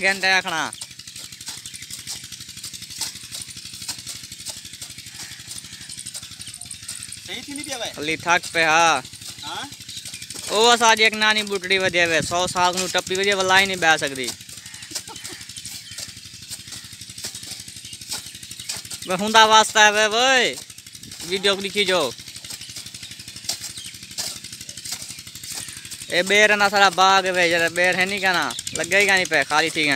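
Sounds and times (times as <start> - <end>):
engine chugging: 0.0 - 29.9
hoe blades cutting into soil: 0.0 - 29.9.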